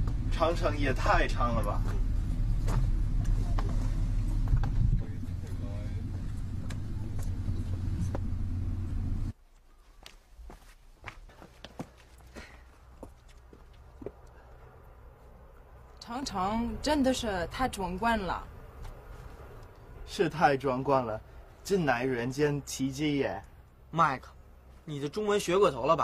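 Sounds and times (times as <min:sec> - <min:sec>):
wind buffeting microphone: 0:01.0 - 0:09.3.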